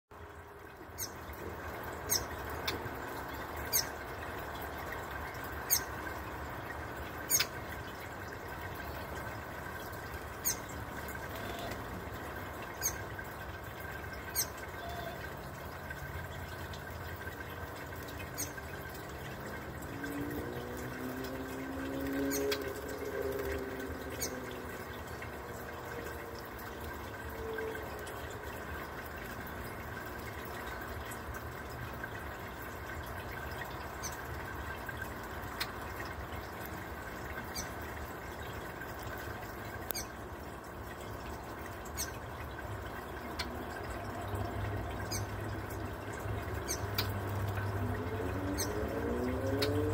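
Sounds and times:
fountain bubbling and trickling: 0.1 - 49.9
bird chip calls: 7.3 - 7.6.

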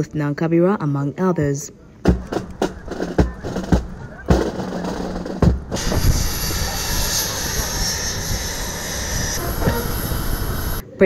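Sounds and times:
marching beats: 2.0 - 10.8
jet engines whining: 2.3 - 10.9.

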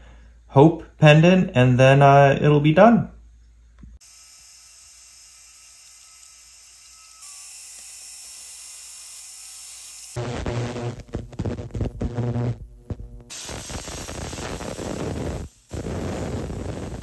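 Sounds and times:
rotary tool polishing metal hiss: 4.0 - 10.2, 13.3 - 17.0
cleaning tank throbbing hum: 9.5 - 17.0.

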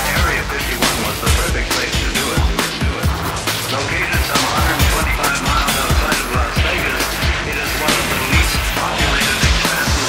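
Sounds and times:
psytrance music: 0.0 - 10.0.

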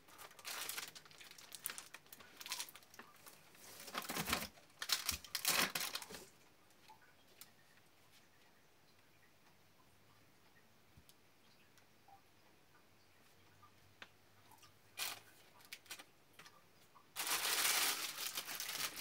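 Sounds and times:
packaging rustling in cardboard box: 0.1 - 2.8, 3.6 - 6.3, 17.2 - 19.0.

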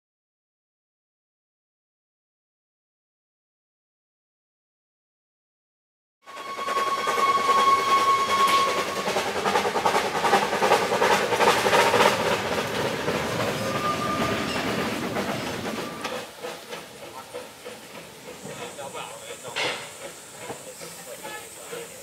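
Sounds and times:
steam locomotive whistle: 6.2 - 16.3
steam locomotive chuffing: 6.2 - 22.0.

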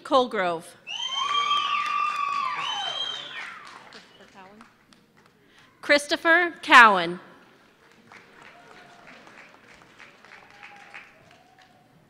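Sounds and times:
high-pitched held cheers: 0.8 - 4.0, 8.4 - 12.0.

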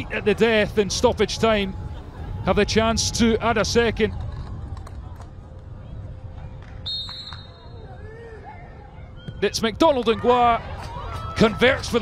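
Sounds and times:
referee's whistle: 6.8 - 7.9.

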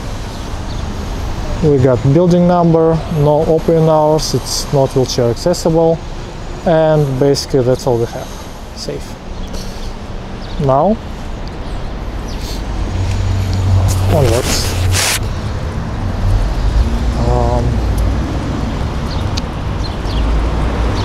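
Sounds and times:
rumble of passing vehicles: 0.0 - 21.0
short rush of noise: 13.2 - 15.3.

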